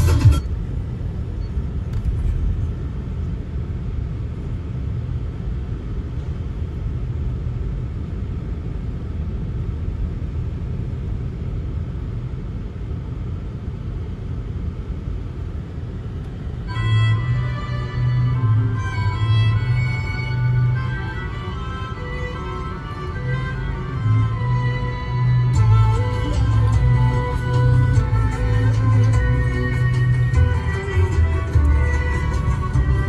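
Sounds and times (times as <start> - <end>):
car engine rumble: 0.0 - 33.0.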